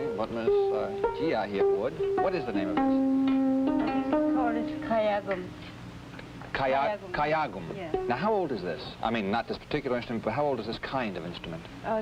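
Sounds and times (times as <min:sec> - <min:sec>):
zither strings plucked: 0:00.0 - 0:05.5.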